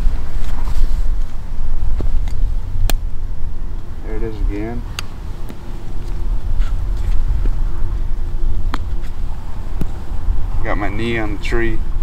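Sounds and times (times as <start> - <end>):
faint hum: 0.0 - 12.0
low rumble: 0.0 - 12.0.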